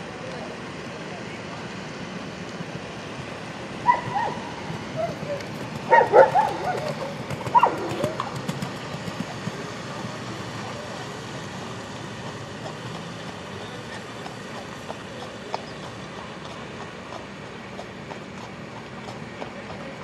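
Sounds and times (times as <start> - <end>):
outdoor background noise: 0.0 - 20.0
horse hoofbeats on sand: 5.2 - 9.7.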